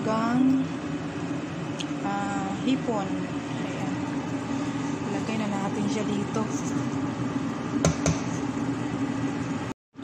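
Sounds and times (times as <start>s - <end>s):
broth boiling: 0.0s - 10.0s
kitchen hum and hiss: 0.0s - 10.0s.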